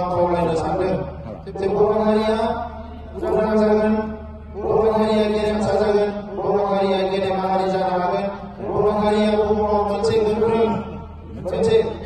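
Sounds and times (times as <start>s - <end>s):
man chanting through loudspeakers: 0.0s - 12.0s.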